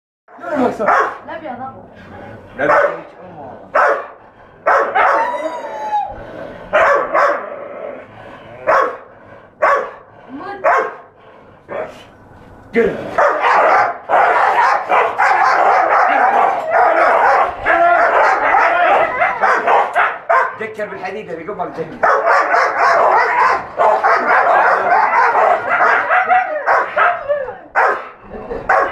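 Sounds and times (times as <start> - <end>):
dogs barking and snarling: 0.5 - 1.3, 2.0 - 12.1, 13.0 - 20.8, 22.0 - 28.9.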